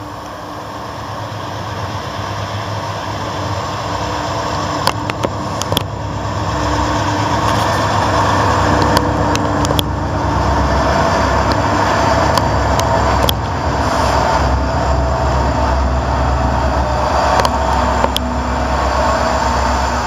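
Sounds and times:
diesel locomotives rumbling past: 0.0s - 20.0s.

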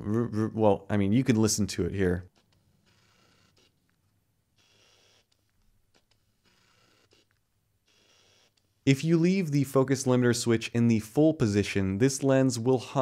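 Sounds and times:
lens autofocus motor whirring: 2.5s - 3.9s, 4.6s - 8.7s.

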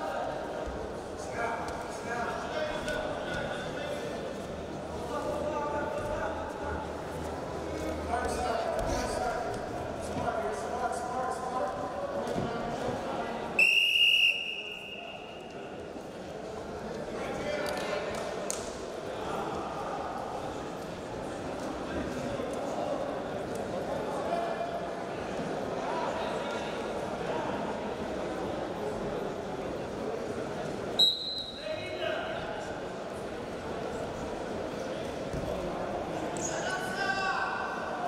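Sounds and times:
murmur of voices echoing: 0.0s - 38.0s.

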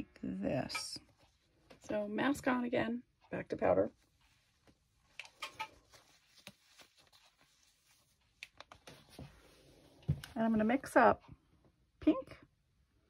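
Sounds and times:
faint clicks and rustles: 3.9s - 11.5s.

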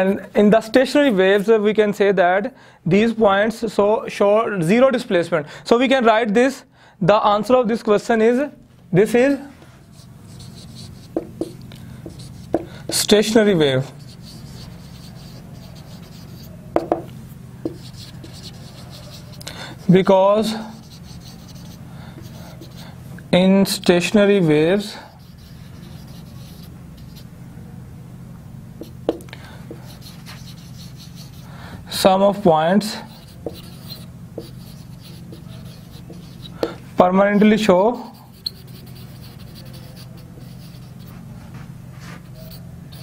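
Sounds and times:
low steady hum: 6.6s - 43.0s
marker pen writing on whiteboard: 9.8s - 23.0s, 24.4s - 27.3s, 28.8s - 31.5s, 32.3s - 36.8s, 37.6s - 43.0s
marker tip tapping board: 11.1s - 13.0s, 16.8s - 18.1s, 28.8s - 29.8s, 33.4s - 33.6s, 34.4s - 34.6s, 35.3s - 36.8s.

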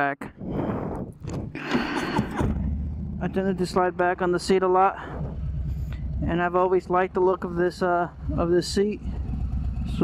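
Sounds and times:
motorcycle engine rumbling: 1.1s - 10.0s.

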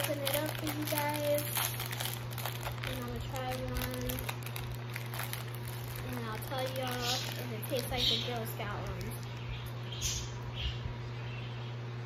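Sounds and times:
foil wrapper crinkling: 0.0s - 9.5s
steady low hum: 0.0s - 12.0s.

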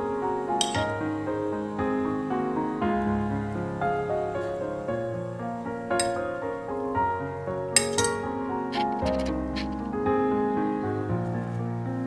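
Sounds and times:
soft solo piano music: 0.0s - 12.0s
metal spoon clinking on plate: 0.6s - 0.9s, 6.0s - 6.2s, 7.8s - 9.7s.

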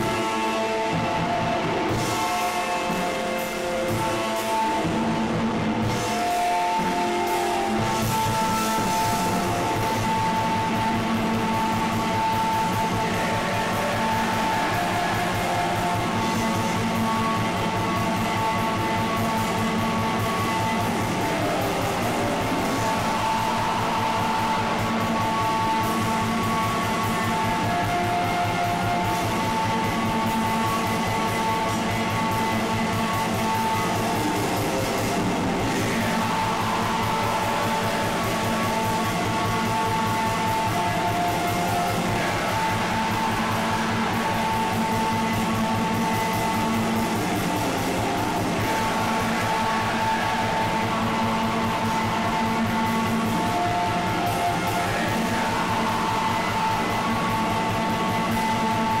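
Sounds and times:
distorted guitars: 0.0s - 59.0s
fast drumming: 0.0s - 59.0s.

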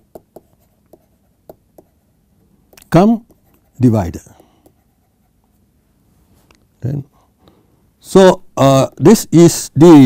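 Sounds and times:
stylus tapping on tablet: 0.0s - 2.0s, 2.7s - 3.7s, 4.3s - 4.8s.

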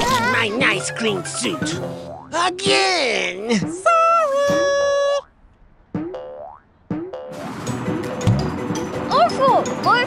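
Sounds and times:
cartoon boing effects: 6.0s - 7.4s.

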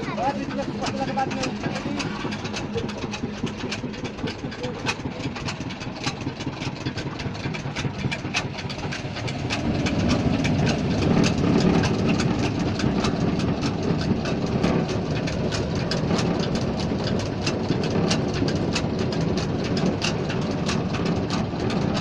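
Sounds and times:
fast patter of clicks: 0.0s - 22.0s
machine engine drone: 0.0s - 22.0s.

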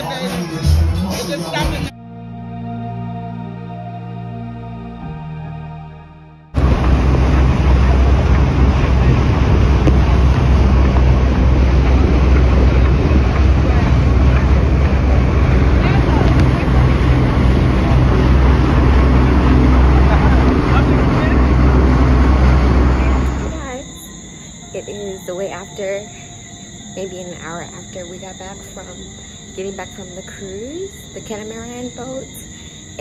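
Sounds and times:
low steady drone: 1.5s - 33.0s
rush of wind and water: 6.6s - 23.6s
wind buffeting on microphone: 6.6s - 24.0s.

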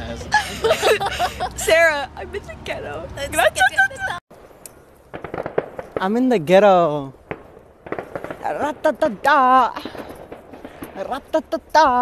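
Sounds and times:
sharp pops: 4.6s - 6.3s, 7.2s - 11.2s.

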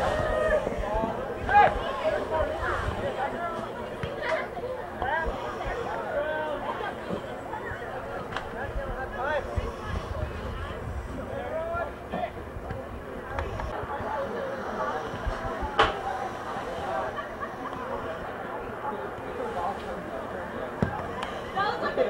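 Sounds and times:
voices chattering and calling out: 0.0s - 22.0s.

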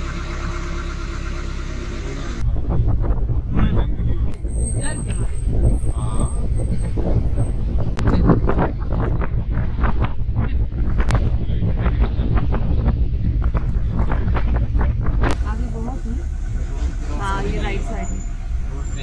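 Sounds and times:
jeep engine and tyres rumbling: 0.0s - 19.0s
people talking: 1.6s - 19.0s
wind on microphone: 2.4s - 19.0s.

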